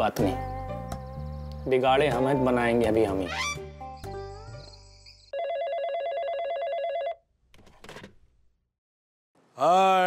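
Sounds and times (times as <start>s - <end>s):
telephone ringing with electronic trill: 5.2s - 7.2s.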